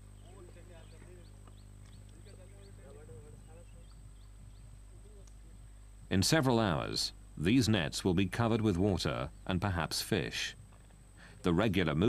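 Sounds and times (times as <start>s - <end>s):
distant people talking: 0.0s - 5.8s
steady low hum: 0.0s - 12.0s.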